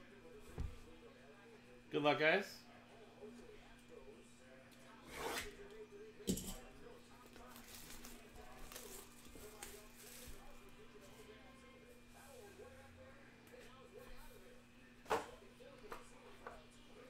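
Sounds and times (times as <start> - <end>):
plastic wrap crinkling: 7.2 - 10.6.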